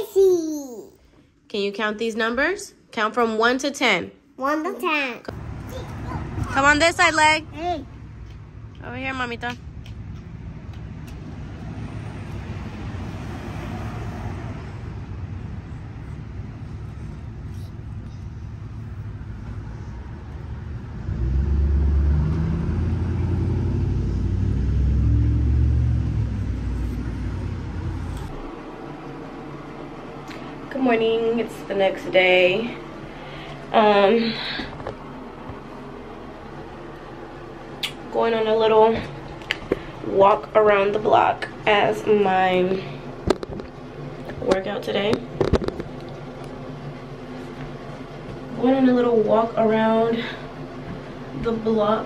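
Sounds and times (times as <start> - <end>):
low hum: 6.3 - 52.0.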